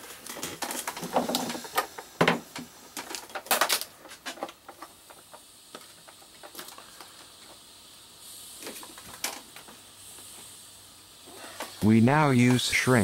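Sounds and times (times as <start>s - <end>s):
soft hiss: 0.0s - 13.0s.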